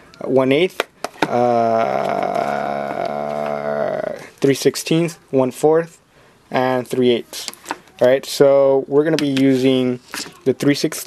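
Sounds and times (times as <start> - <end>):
man's drawn-out hesitation sound: 1.2 - 11.0.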